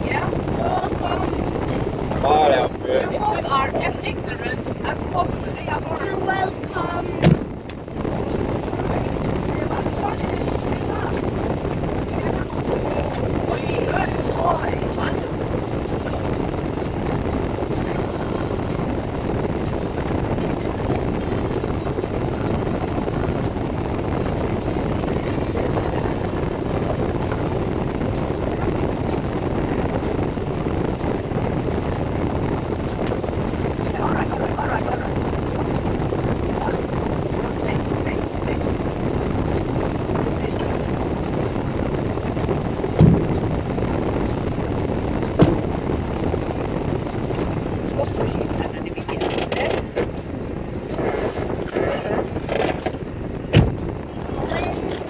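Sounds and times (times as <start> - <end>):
car engine idling: 0.0 - 55.0
loud knocks: 43.0 - 43.4, 45.4 - 45.7.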